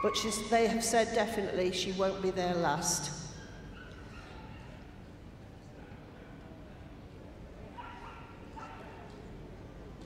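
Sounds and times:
low background noise: 0:00.0 - 0:10.0
dog yipping: 0:03.4 - 0:04.8.

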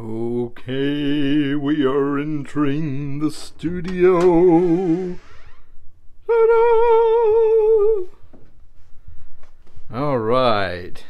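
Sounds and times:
man singing held note with vibrato: 0:00.0 - 0:05.4, 0:06.2 - 0:08.2.

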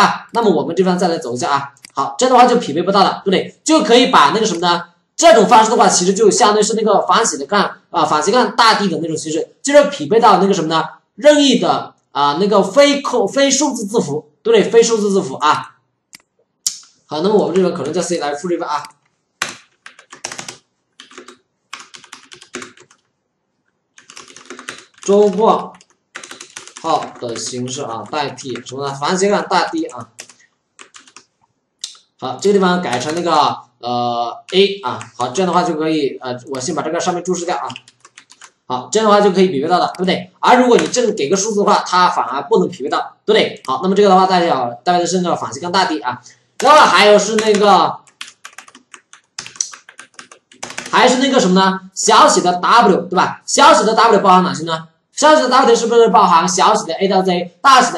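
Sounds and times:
typing on computer keyboard: 0:18.8 - 0:23.1, 0:24.0 - 0:28.8, 0:29.8 - 0:32.0, 0:32.9 - 0:33.3, 0:37.6 - 0:38.6, 0:40.7 - 0:41.1, 0:46.6 - 0:51.2.

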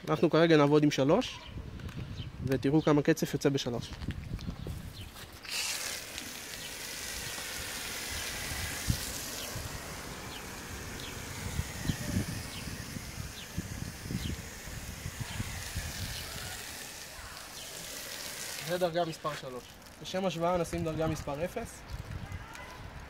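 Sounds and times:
foam spray hissing: 0:04.7 - 0:21.8.

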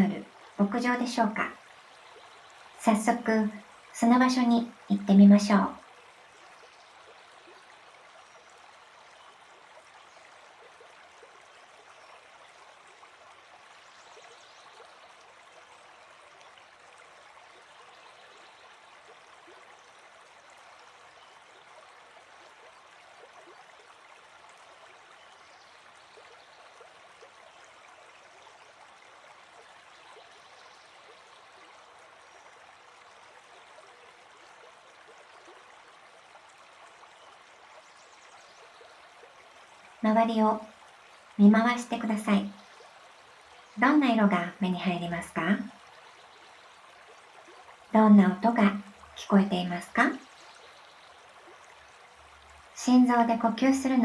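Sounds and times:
stream running water: 0:00.0 - 0:54.0.

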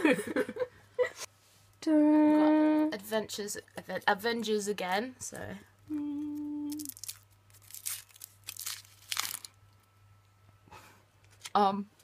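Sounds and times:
foil wrapper crinkling: 0:06.7 - 0:09.6.

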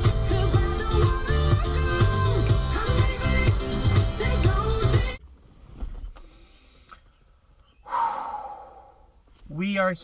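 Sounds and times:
man sighing: 0:07.8 - 0:09.2.

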